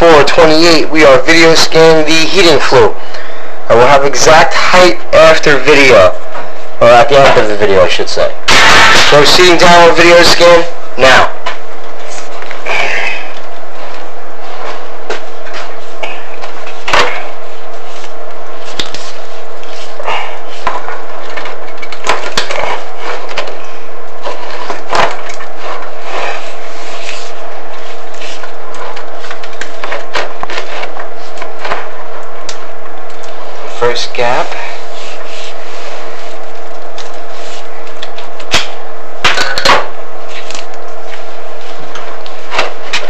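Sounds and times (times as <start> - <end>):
steady hum: 0.0 - 43.0.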